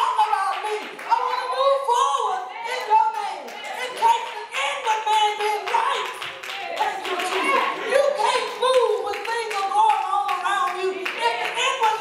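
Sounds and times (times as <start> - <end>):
hand clapping: 3.2 - 7.8, 8.4 - 12.0.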